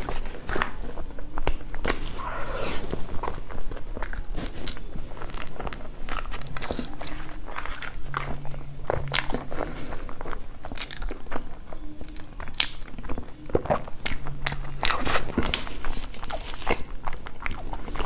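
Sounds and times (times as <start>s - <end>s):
close chewing with mouth smacks: 4.0s - 18.0s.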